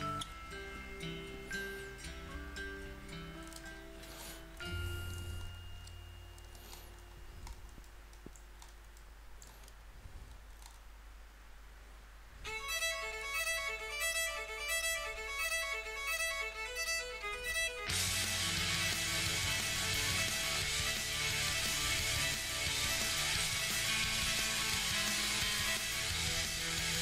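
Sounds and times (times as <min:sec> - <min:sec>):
rhythmic background music: 0:00.0 - 0:05.5, 0:12.5 - 0:27.0.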